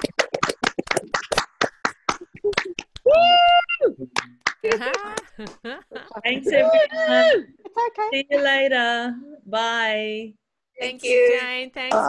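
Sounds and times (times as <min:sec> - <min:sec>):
choppy hand claps: 0:00.0 - 0:03.3, 0:04.0 - 0:05.7
person cheering: 0:02.4 - 0:04.0, 0:04.6 - 0:05.5.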